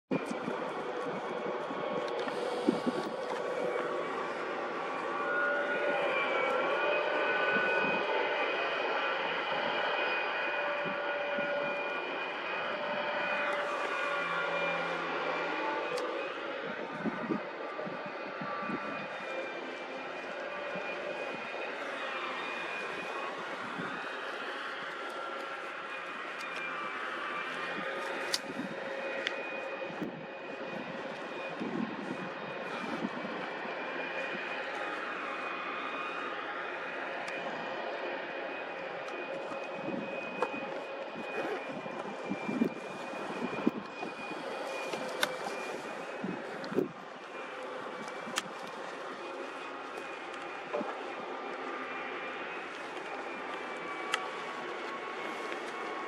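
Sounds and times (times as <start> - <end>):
construction machinery engine drone: 0.1 - 56.0.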